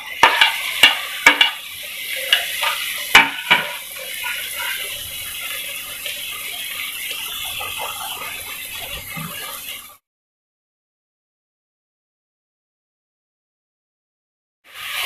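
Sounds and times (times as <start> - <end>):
tomatoes sizzling in oil: 0.0 - 10.0, 14.7 - 15.0
metal spoon clinking on pan: 0.2 - 1.6.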